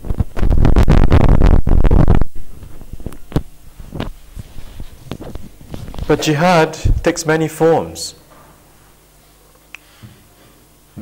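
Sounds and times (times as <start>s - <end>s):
microphone handling thumps: 0.0s - 7.1s
faint steady hum: 0.0s - 11.0s.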